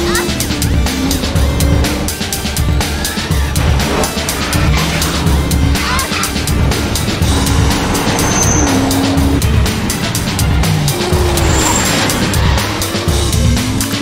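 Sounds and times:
car engine running at speed: 0.0 - 14.0
driving film score with fast beat: 0.0 - 14.0
road noise of passing lorries: 3.4 - 14.0.

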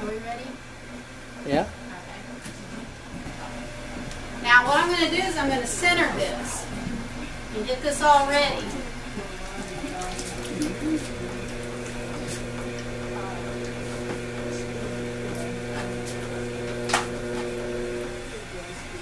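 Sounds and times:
potter's wheel motor humming: 0.0 - 19.0.

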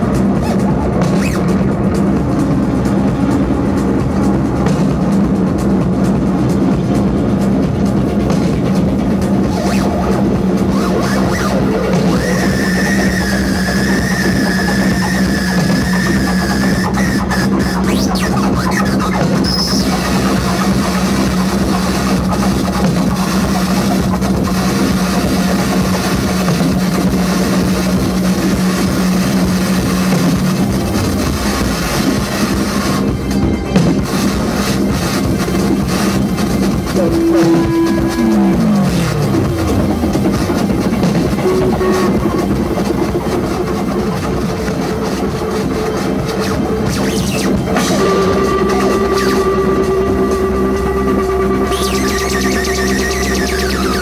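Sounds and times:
dense noisy electronic texture: 0.0 - 54.0
low synthesizer drone: 0.0 - 54.0
high held tone: 9.2 - 54.0.

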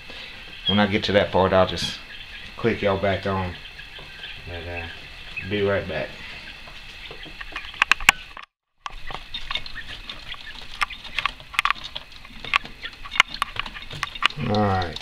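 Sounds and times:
chicks pecking in bedding: 0.0 - 15.0.

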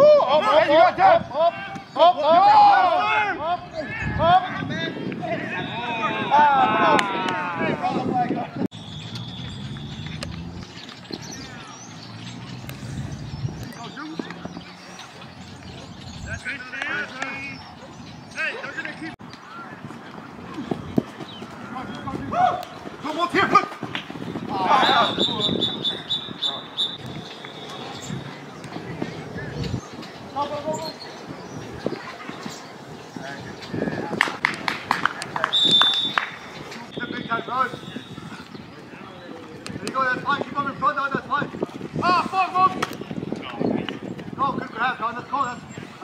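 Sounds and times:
people shouting and calling out: 0.0 - 8.7, 15.8 - 36.2, 36.8 - 46.0.

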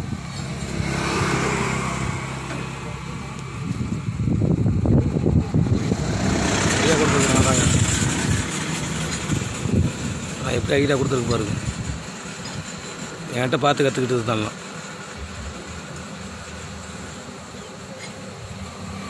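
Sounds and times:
engine idling: 1.6 - 19.0
men talking: 6.6 - 8.2, 10.2 - 12.1, 13.2 - 14.6.

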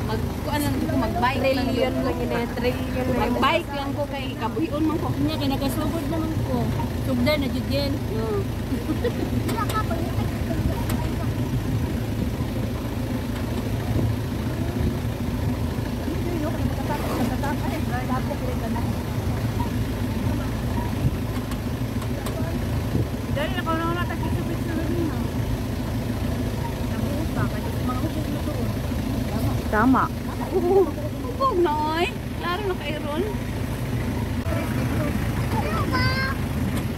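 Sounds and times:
motor scooter engine running: 0.0 - 36.9
voices talking: 0.0 - 36.9.

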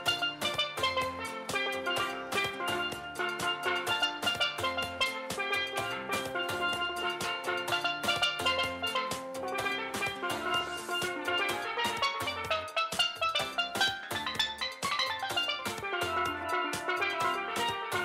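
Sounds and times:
drums: 0.0 - 18.0
low bass line: 0.0 - 18.0
steelpan melody: 0.0 - 18.0.

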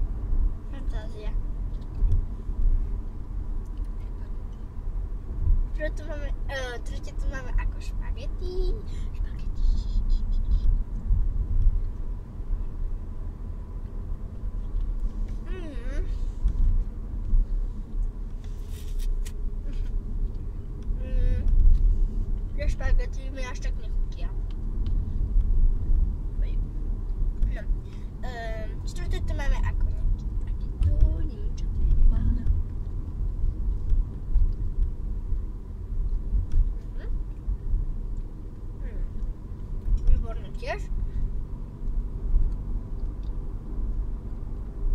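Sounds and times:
car cabin rumble: 0.0 - 44.9.

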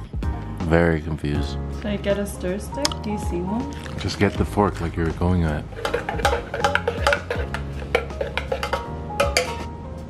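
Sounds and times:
background music: 0.0 - 10.0
fork clinking against metal carafe: 5.6 - 9.7.

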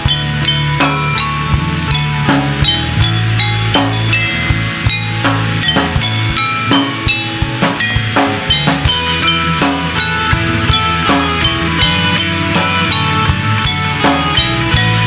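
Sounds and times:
drum kit steady beat: 0.0 - 15.0
live band playing: 0.0 - 15.0.

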